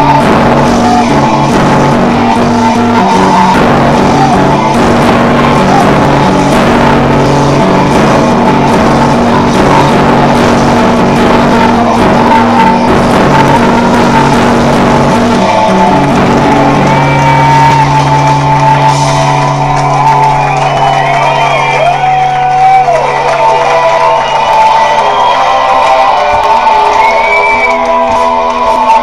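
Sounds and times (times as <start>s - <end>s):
rock music with guitar: 0.0s - 29.0s.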